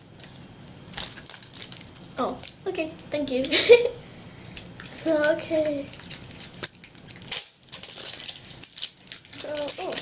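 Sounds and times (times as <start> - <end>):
plastic wrapping crinkling: 0.0 - 3.9, 4.5 - 10.0.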